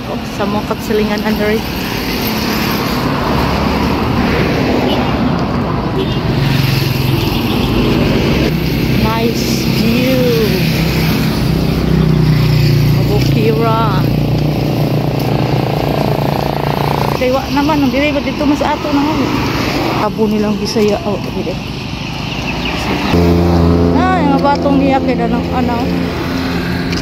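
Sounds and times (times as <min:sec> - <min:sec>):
road traffic passing: 0:00.0 - 0:27.0.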